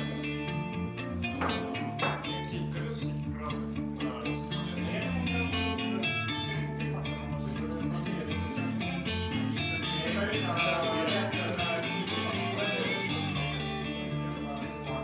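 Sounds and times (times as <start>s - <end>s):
electric guitar picked notes: 0.0s - 15.0s
sustained low bass notes: 0.0s - 15.0s.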